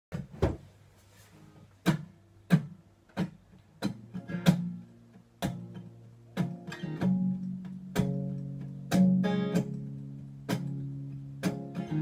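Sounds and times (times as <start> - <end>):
acoustic guitar strummed chords: 3.8 - 12.0.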